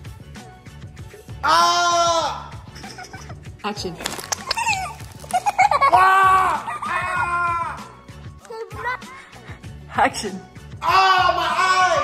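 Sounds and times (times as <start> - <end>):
person shouting: 1.4 - 2.5, 5.9 - 7.8, 10.8 - 12.0.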